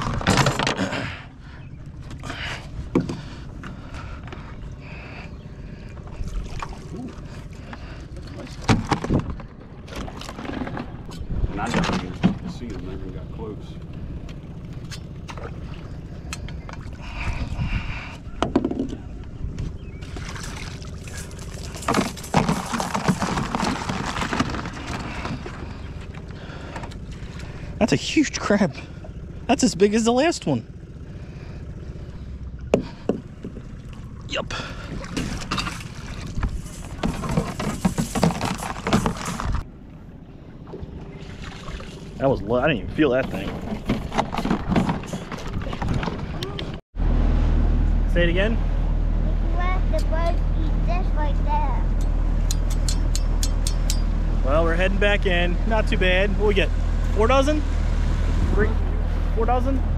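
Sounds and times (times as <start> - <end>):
knocks and clatter in boat: 0.0 - 1.1, 2.0 - 4.6, 5.8 - 27.5, 32.6 - 34.0, 34.8 - 39.6, 42.9 - 46.8
steady low rumble: 0.0 - 59.9.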